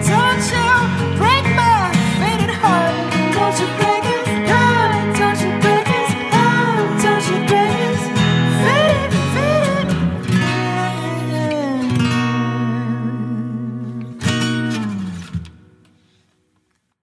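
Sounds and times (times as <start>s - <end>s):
wordless vocal: 0.0s - 14.3s
bass guitar: 0.0s - 15.8s
strummed acoustic guitar: 0.0s - 16.3s.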